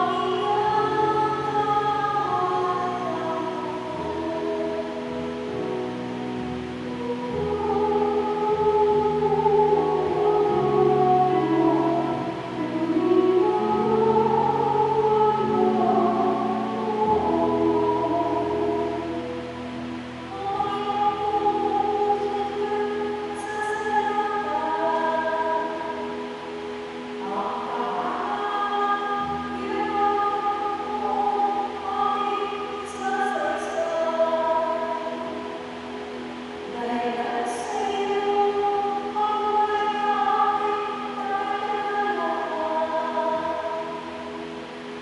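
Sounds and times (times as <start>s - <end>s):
woman singing hymn into microphone: 0.0s - 45.0s.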